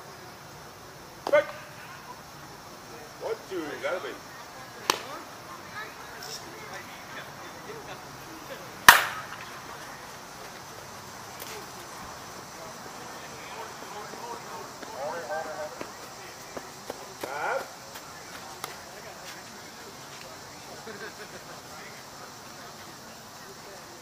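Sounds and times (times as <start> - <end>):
softball bat hitting ball: 4.8 - 5.1, 8.8 - 9.5.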